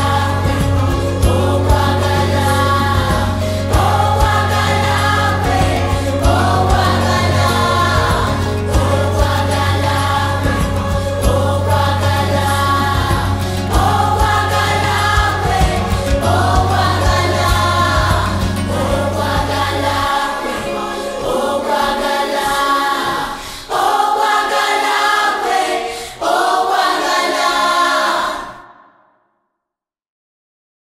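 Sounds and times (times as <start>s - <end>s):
low bass: 0.0s - 20.8s
several voices singing: 0.0s - 29.0s.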